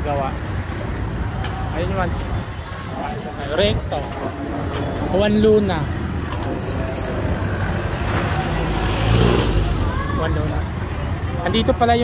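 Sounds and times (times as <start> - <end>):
city street traffic: 0.0 - 12.0
motor vehicle passing close: 6.3 - 10.0.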